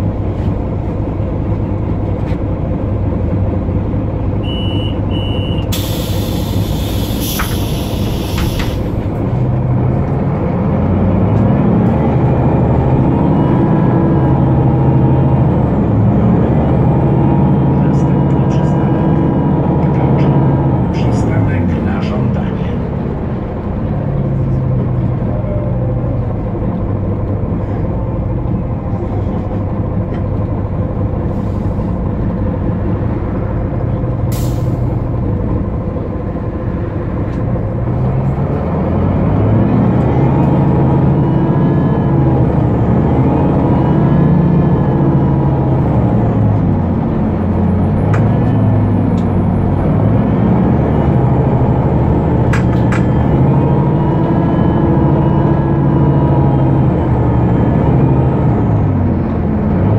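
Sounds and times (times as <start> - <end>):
bus diesel engine accelerating: 0.0 - 59.9.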